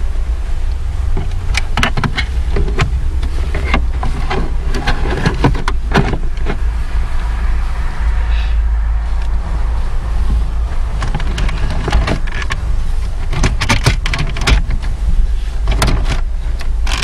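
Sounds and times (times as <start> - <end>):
steady low rumble: 0.0 - 17.0.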